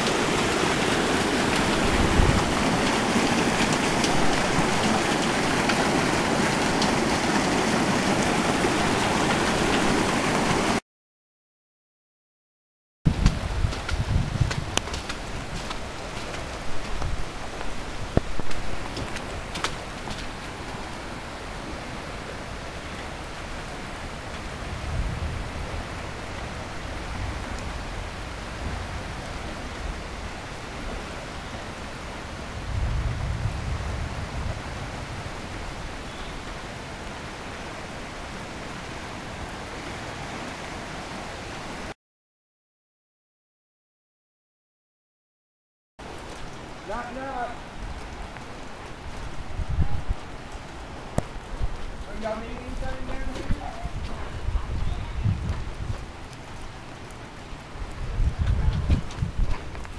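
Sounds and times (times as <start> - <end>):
rain hissing: 0.0 - 10.8, 13.1 - 42.0, 46.0 - 59.9
rushing floodwater: 0.0 - 10.8, 13.1 - 42.0, 46.0 - 59.9.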